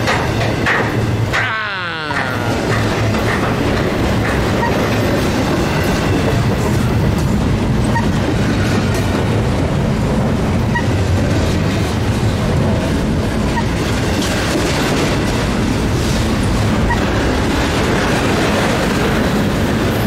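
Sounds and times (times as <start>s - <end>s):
freight train wheels rumbling: 0.0s - 20.0s.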